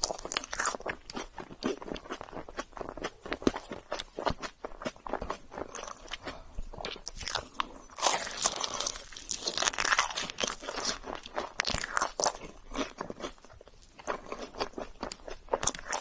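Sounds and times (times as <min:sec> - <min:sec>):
chewing: 0:00.0 - 0:16.0.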